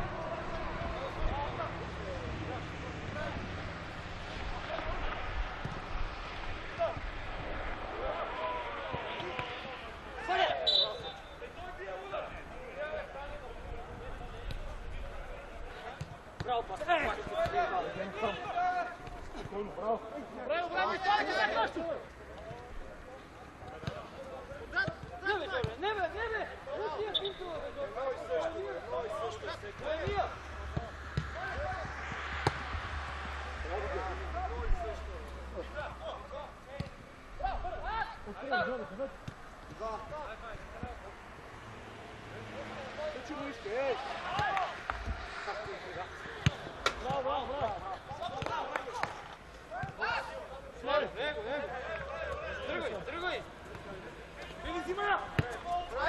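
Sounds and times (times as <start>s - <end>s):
players shouting: 0.0s - 13.2s, 15.7s - 22.2s, 42.3s - 56.0s.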